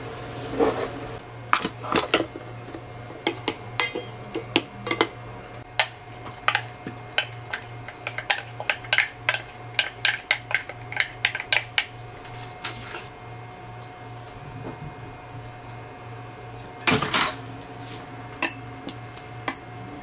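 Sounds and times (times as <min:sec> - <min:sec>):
steady low hum: 0:00.0 - 0:20.0
utensils clinking against dishes: 0:01.6 - 0:05.6, 0:18.4 - 0:18.7.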